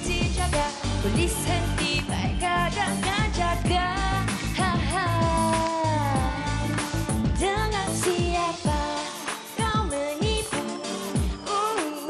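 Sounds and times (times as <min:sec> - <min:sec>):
pop backing track with beat: 0:00.0 - 0:12.0.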